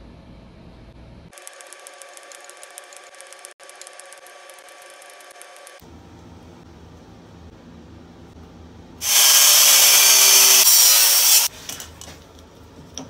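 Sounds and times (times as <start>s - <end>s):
welding arc buzzing and crackling: 9.0s - 11.5s.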